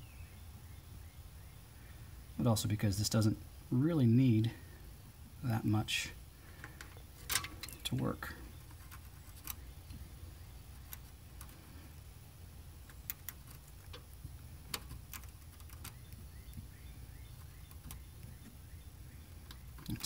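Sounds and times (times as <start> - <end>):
low background hum: 0.0 - 20.0.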